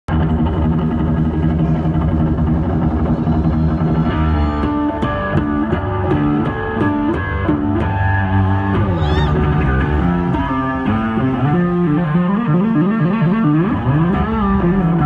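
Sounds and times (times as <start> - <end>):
electric bass through amplifier: 0.1 - 15.0.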